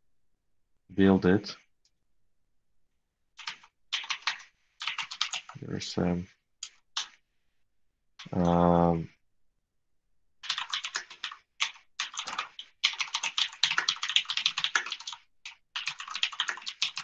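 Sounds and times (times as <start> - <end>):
typing on computer keyboard: 3.4 - 5.6, 10.4 - 17.0.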